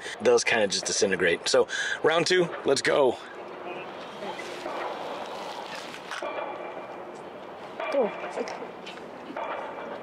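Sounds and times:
wind: 0.0s - 10.0s.

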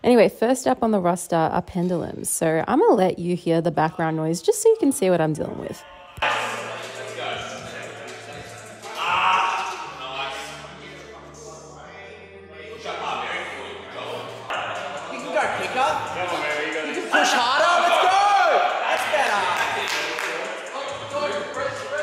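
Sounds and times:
voices talking and calling out: 5.5s - 22.0s
music with steady bass: 6.2s - 22.0s.

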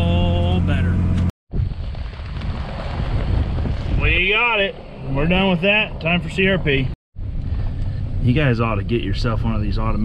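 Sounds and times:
wind buffeting microphone: 1.5s - 6.6s.

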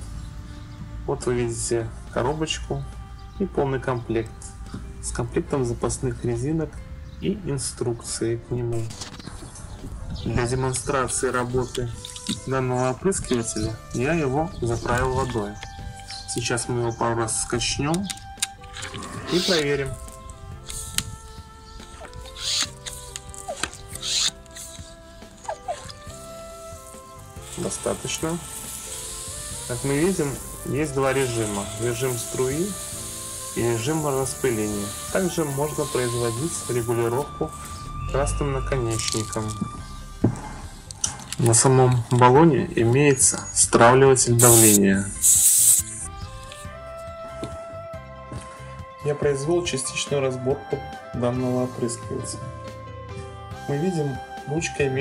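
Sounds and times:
background music: 0.0s - 55.0s
hand pump whooshing: 18.6s - 37.9s, 44.4s - 46.6s
compressed air hissing from valve: 19.3s - 37.9s, 44.4s - 46.6s.

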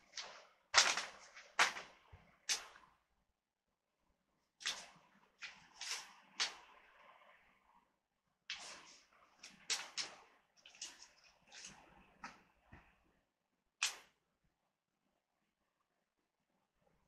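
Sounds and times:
paper and packaging rustling: 0.0s - 1.9s.

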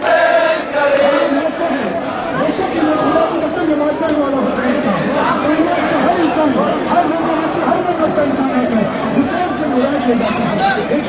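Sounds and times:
men chanting in unison: 0.0s - 4.1s.

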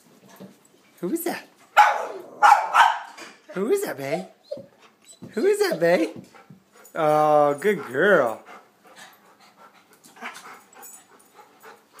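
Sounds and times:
dog breathing softly: 5.8s - 12.0s.

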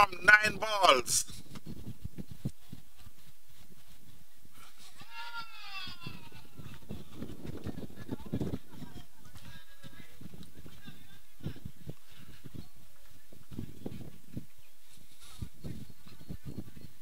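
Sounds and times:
distant voice calling out: 0.0s - 1.3s.

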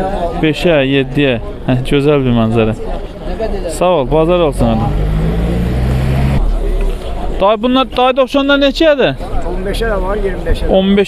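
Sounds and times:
vehicle engine running: 4.2s - 7.3s.

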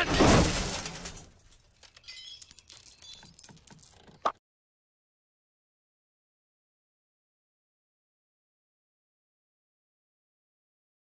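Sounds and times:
broken glass tinkling: 0.3s - 4.2s.

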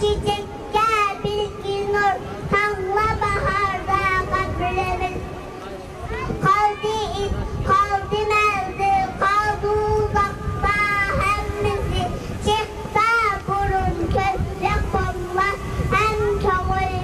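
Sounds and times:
child singing into microphone: 0.0s - 5.4s, 6.0s - 17.0s.

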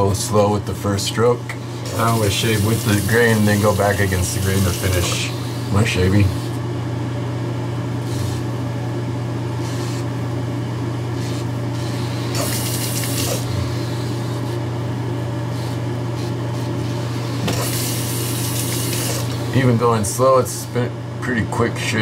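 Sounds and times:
running water from tap: 1.8s - 6.4s, 12.0s - 13.9s, 17.0s - 19.6s.

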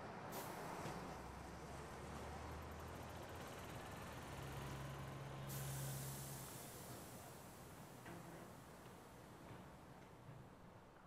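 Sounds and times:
bus air brake hiss: 0.3s - 0.8s, 5.4s - 8.4s.

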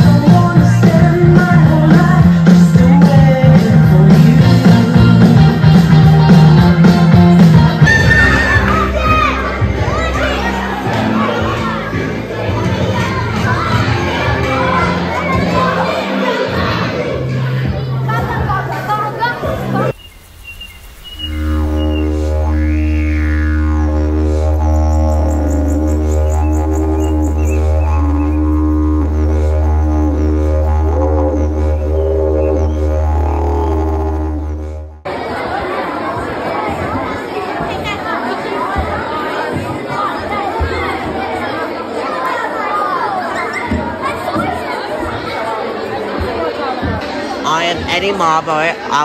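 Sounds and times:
crowd chatter: 0.0s - 49.0s
didgeridoo drone: 20.9s - 35.1s.

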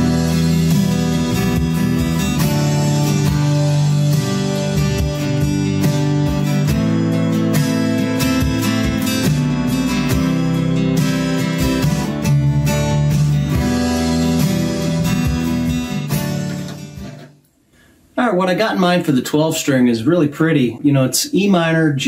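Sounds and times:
acoustic guitar strummed: 0.0s - 17.4s.

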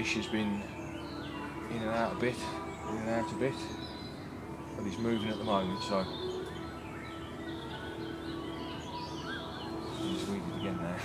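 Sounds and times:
small birds singing: 0.0s - 11.0s.

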